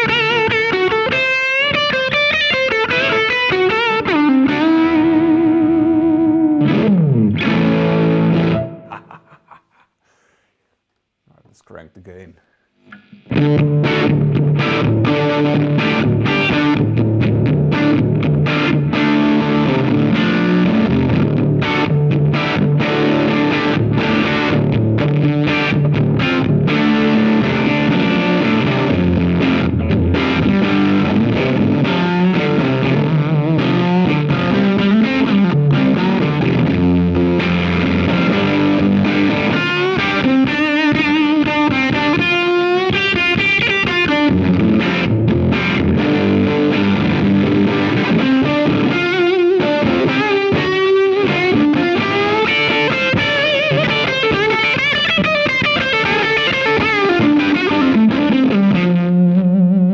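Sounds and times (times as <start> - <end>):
distorted electric guitar: 0.0 - 9.9, 12.8 - 59.9.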